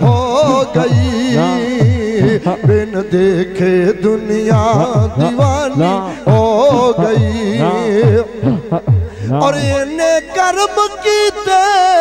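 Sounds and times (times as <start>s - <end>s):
men singing through a pa: 0.0s - 12.0s.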